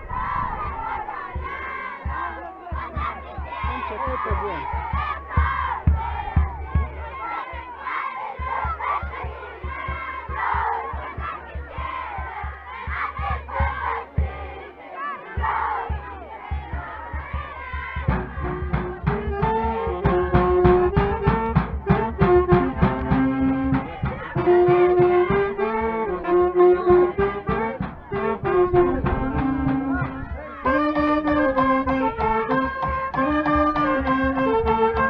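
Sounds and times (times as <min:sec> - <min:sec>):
low thumps: 0:00.0 - 0:14.7, 0:15.4 - 0:35.0
spectators shouting and cheering: 0:00.0 - 0:35.0.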